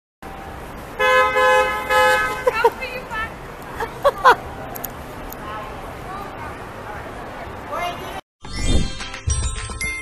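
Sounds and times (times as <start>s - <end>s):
car horn honking: 1.0s - 2.6s.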